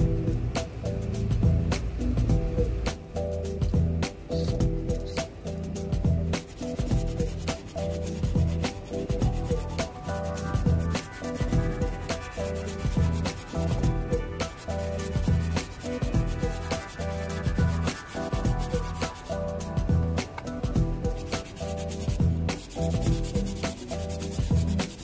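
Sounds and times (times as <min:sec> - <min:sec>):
sanding sponge scratching metal: 0:06.3 - 0:19.7, 0:20.9 - 0:25.0.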